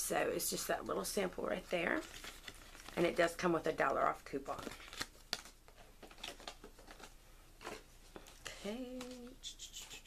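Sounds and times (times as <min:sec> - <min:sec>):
packaging rustling: 0:01.7 - 0:03.4, 0:04.0 - 0:09.2.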